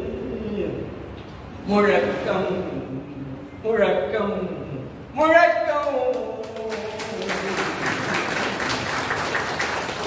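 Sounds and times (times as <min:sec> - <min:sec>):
audience applause: 0:06.5 - 0:10.0.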